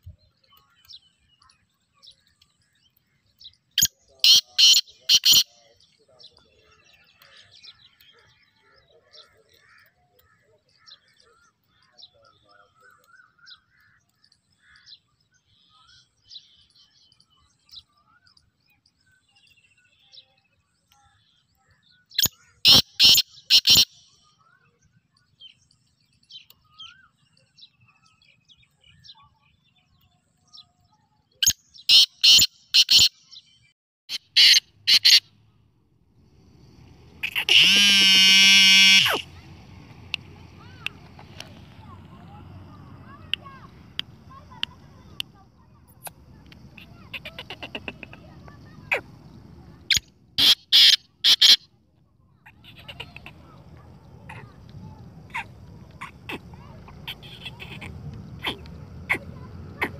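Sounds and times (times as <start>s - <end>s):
small birds chirping: 0.0s - 59.9s
francolin calling: 3.8s - 5.8s, 34.1s - 35.3s, 36.3s - 51.6s, 52.4s - 59.9s.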